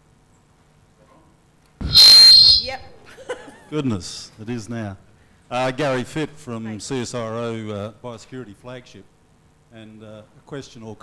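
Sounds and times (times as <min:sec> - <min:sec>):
microphone feedback squeal: 0:01.8 - 0:02.9.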